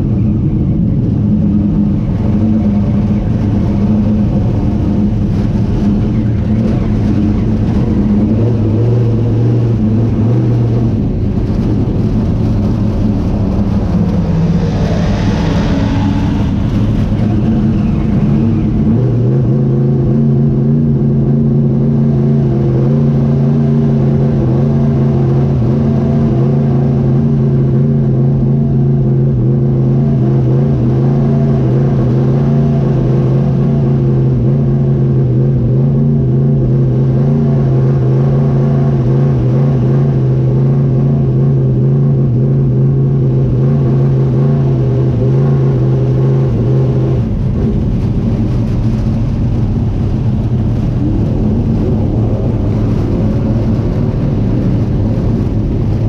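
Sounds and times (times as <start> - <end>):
rushing noise: 0.0 - 41.2, 43.3 - 56.0
race car engine at low revs: 0.0 - 56.0.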